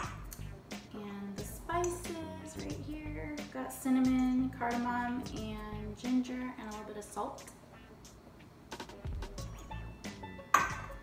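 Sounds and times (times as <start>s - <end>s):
background music: 0.0s - 11.0s
glass dishes clinking: 10.6s - 11.0s.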